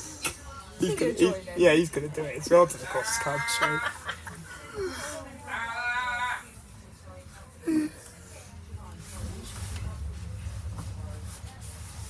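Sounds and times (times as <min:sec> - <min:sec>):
low steady rumble: 0:06.6 - 0:12.0.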